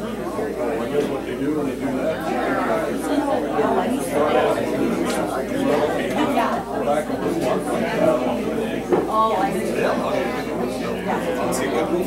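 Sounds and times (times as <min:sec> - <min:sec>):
overlapping indistinct conversation: 0:00.0 - 0:12.0.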